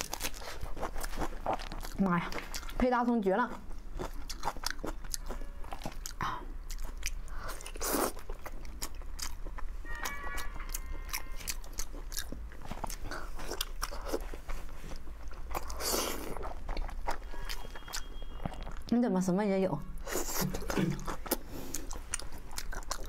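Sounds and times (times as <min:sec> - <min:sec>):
person chewing wetly: 0:00.0 - 0:02.8, 0:03.5 - 0:19.0, 0:20.0 - 0:23.0.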